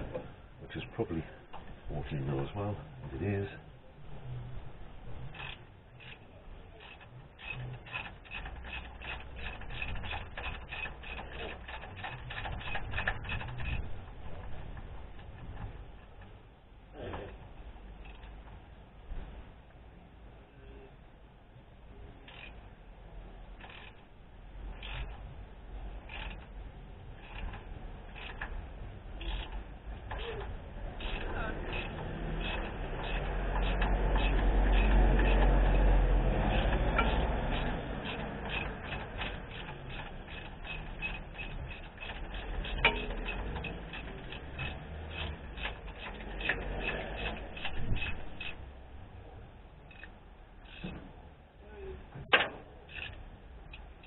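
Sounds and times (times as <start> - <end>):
socket ratchet clicking: 26.0 - 26.5.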